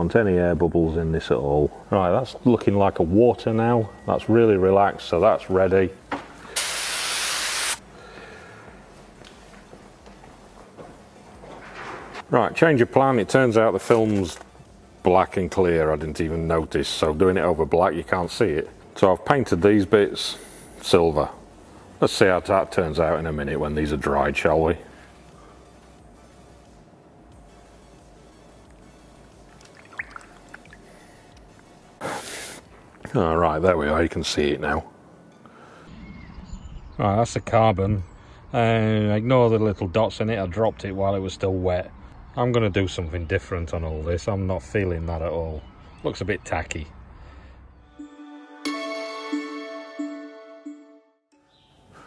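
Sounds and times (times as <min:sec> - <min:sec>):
spray gun hissing: 0:06.6 - 0:07.8, 0:32.0 - 0:32.6
water sloshing and dripping: 0:29.4 - 0:31.0
small splashes: 0:29.6 - 0:30.9.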